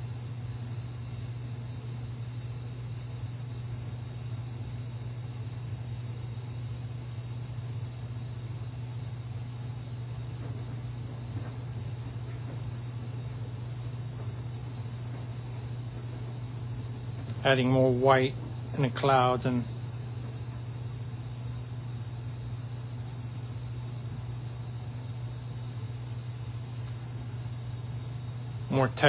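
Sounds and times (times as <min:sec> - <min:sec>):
low background hum: 0:00.0 - 0:29.0.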